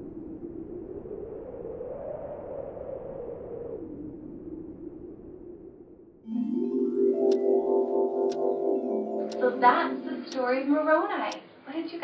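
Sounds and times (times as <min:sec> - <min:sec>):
string quartet sustained tone: 0:06.3 - 0:10.9.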